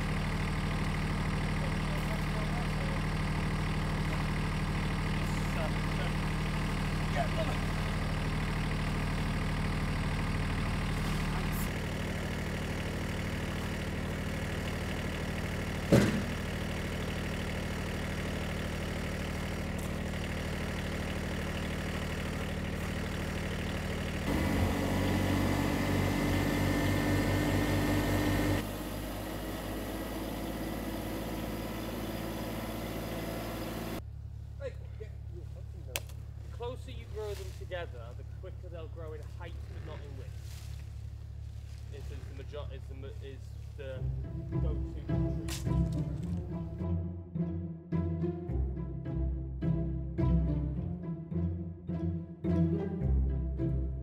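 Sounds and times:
tractor diesel engine idling: 0.0s - 47.0s
sharp knock: 15.9s - 16.3s.

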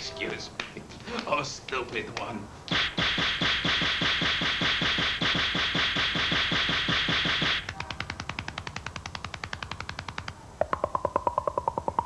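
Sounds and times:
rapid face slaps: 2.7s - 10.4s.

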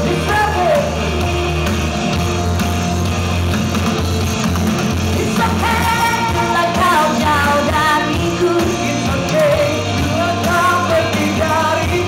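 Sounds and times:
loud pop band accompaniment: 0.0s - 12.0s
man and woman singing: 5.2s - 12.0s.

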